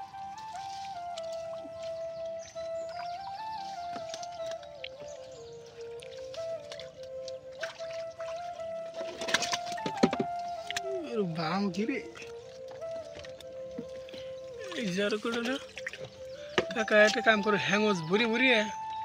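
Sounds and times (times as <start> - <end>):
slow held-note melody: 0.0 - 19.0.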